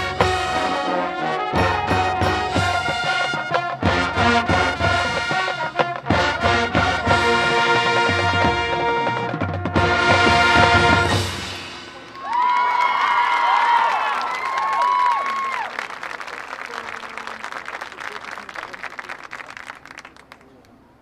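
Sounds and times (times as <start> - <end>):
brass band chord: 0.0 - 12.1
crowd applauding and cheering: 12.0 - 20.5
high whoops: 12.2 - 15.8.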